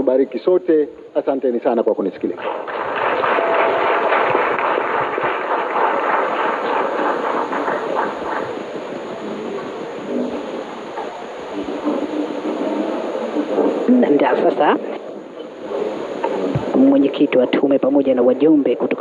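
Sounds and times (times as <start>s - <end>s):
audience applauding: 2.4s - 16.9s
voices talking: 7.8s - 19.0s.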